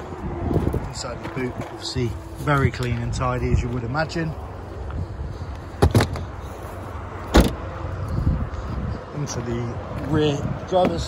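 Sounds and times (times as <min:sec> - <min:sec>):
car boot lid thud shutting: 0:07.3 - 0:07.6.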